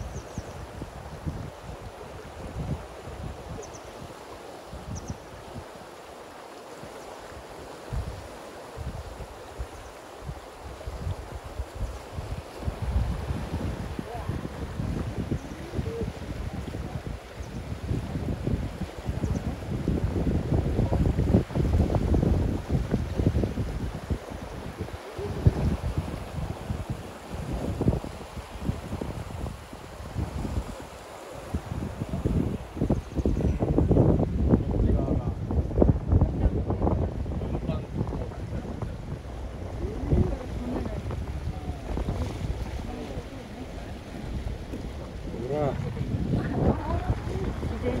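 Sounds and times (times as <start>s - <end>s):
wind buffeting microphone: 0.0s - 5.9s, 6.9s - 48.0s
fast river rushing: 0.0s - 48.0s.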